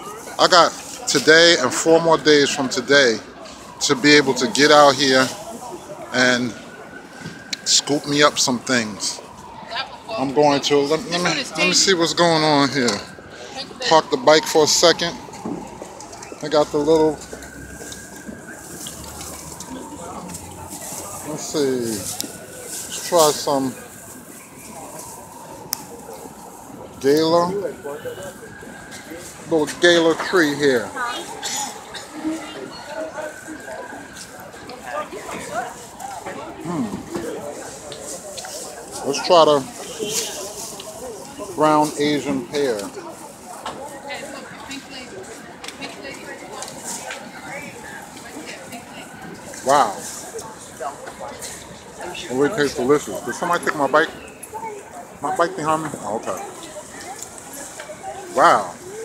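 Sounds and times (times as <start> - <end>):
busy street market ambience: 0.0 - 59.0
people talking nearby: 0.0 - 59.0.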